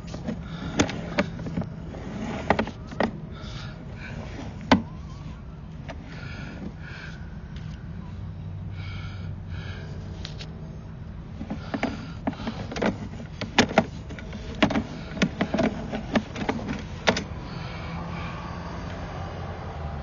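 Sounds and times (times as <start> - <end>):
cable clicks and knocks: 0.0 - 5.0, 11.4 - 17.3
steady low hum: 0.0 - 20.0.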